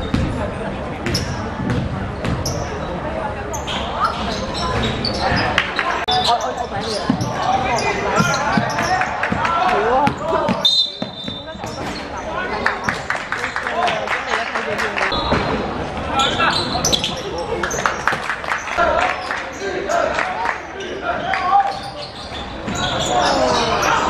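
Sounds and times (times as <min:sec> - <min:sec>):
ball bouncing on wooden court: 0:01.0 - 0:02.6, 0:08.2 - 0:12.0
referee's whistle: 0:10.5 - 0:11.6.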